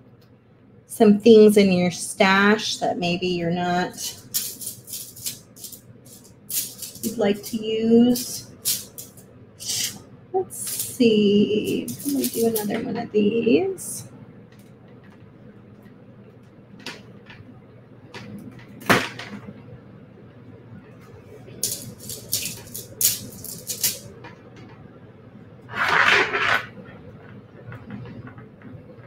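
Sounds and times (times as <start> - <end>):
beads clicking in metal tin: 4.0 - 9.9, 10.6 - 11.0, 11.6 - 12.8, 21.6 - 24.1.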